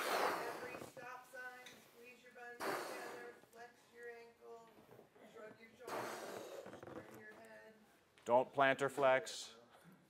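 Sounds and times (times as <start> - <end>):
man blowing up balloon: 0.0 - 0.9, 5.9 - 6.8.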